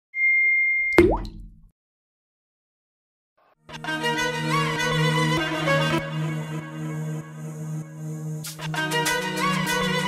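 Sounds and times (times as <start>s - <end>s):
upward-gliding bloop: 0.9s - 1.6s
sharp pop: 1.0s - 1.6s.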